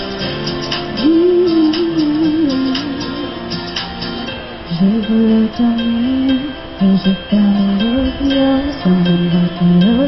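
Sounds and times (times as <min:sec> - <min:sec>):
instrumental accompaniment: 0:00.0 - 0:10.0
woman singing into a microphone: 0:00.9 - 0:03.3, 0:04.7 - 0:10.0.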